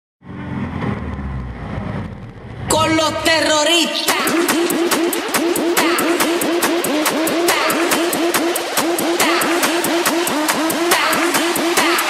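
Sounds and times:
road noise: 0:00.2 - 0:03.6.

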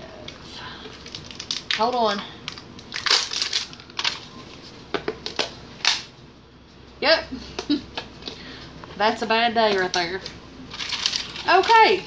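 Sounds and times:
plastic tub crinkling: 0:00.9 - 0:04.3, 0:09.6 - 0:12.0.

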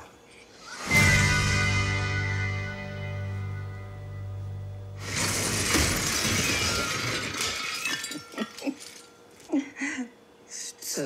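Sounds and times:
glass and debris shattering: 0:05.0 - 0:09.4
people talking: 0:10.5 - 0:11.0.

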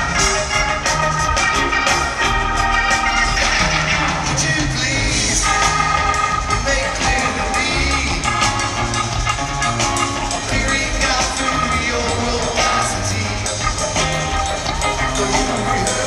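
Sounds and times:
drums: 0:00.0 - 0:16.0
electric guitar: 0:00.0 - 0:16.0
keyboards: 0:00.0 - 0:16.0.

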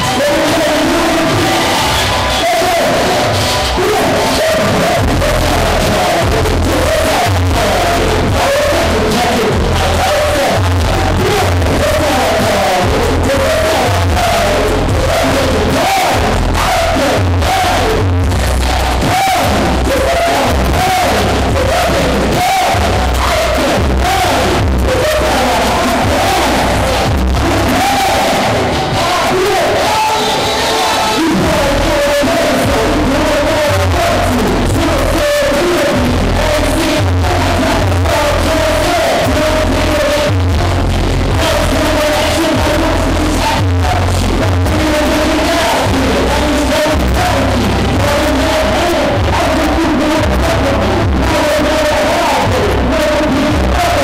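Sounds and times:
crowd voices: 0:00.0 - 0:54.0
hip-hop music with heavy bass: 0:00.0 - 0:54.0.

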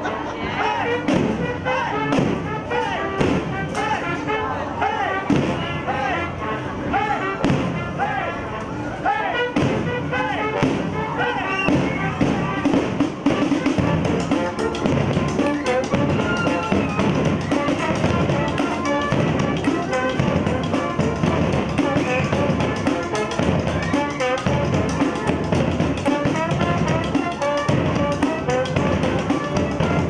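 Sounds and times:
brass band playing: 0:00.0 - 0:30.0
surdo drum beats: 0:00.6 - 0:04.0, 0:05.2 - 0:05.7, 0:07.4 - 0:07.8, 0:09.5 - 0:30.0.

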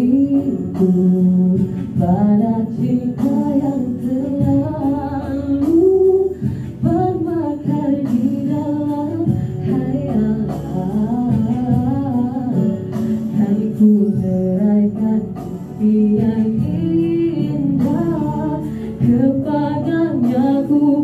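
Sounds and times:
woman singing: 0:00.0 - 0:21.0.

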